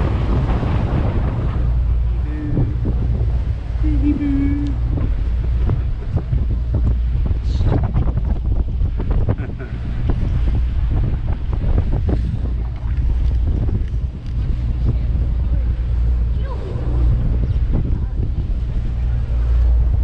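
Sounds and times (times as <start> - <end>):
boat engine low rumble: 0.0 - 20.0
rushing water from wake: 0.0 - 20.0
wind buffeting microphone: 0.0 - 20.0.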